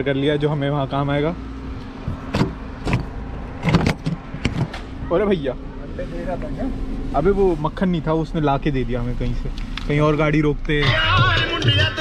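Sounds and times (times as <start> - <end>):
car door latch clicks and clunks: 2.1 - 4.9.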